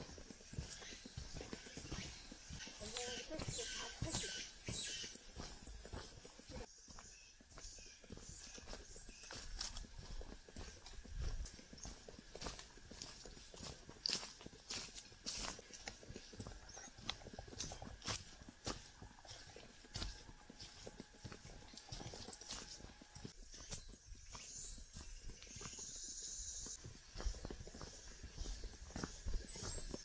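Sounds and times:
footsteps crunching on forest trail: 0.0 - 30.0.

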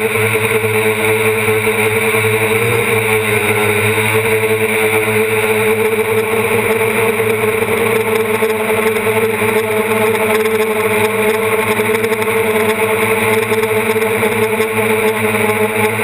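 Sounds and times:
quadcopter motors buzzing: 0.0 - 16.0.

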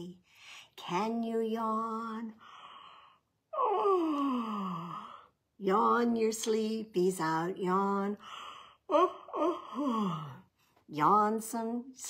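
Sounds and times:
woman yawning: 3.6 - 5.0.

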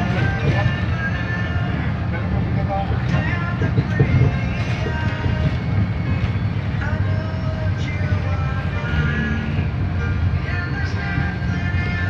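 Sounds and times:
music playing: 0.0 - 12.0
vehicle rumble from inside: 0.0 - 12.0.

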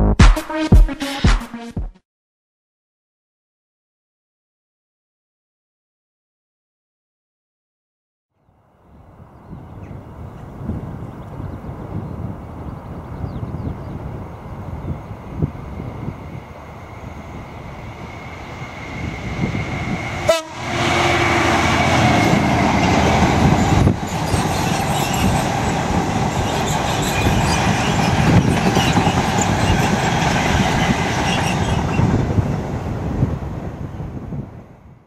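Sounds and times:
diesel locomotive engine running: 13.5 - 33.1
wagons rumbling and clattering: 22.3 - 31.9.

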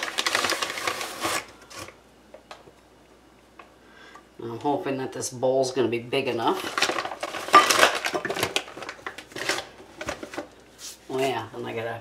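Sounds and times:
paper bag rustling: 0.0 - 2.0, 6.5 - 11.4.

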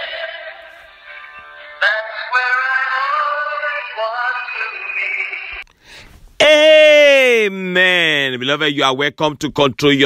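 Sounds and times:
person singing worship song: 0.0 - 5.6.

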